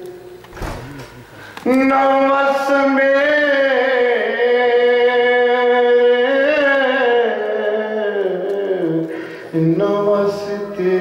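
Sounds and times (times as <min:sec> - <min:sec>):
man singing a long held note: 0:01.6 - 0:11.0.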